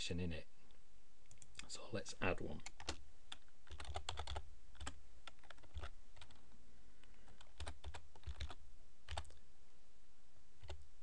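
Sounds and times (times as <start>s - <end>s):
typing on computer keyboard: 2.6s - 6.4s, 7.3s - 9.4s.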